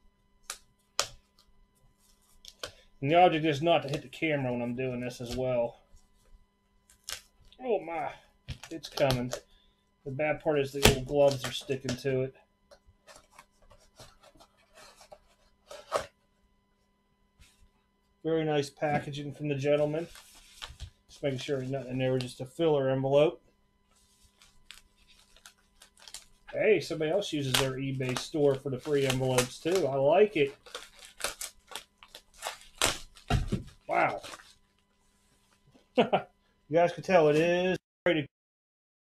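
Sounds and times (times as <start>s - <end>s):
plastic mailer crinkling: 10.7s - 12.0s, 13.0s - 16.1s, 24.0s - 34.8s.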